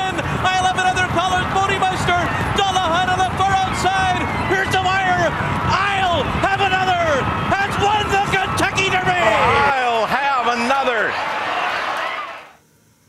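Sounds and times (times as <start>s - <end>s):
announcer calling horse race: 0.0s - 11.2s
crowd noise: 0.0s - 12.6s.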